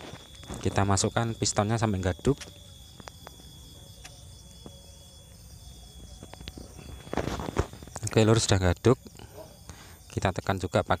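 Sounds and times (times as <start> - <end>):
insect trill: 0.0 - 11.0.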